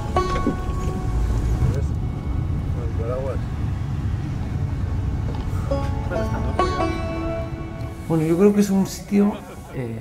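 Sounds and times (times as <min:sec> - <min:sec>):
car cabin road and engine rumble: 0:00.0 - 0:06.9.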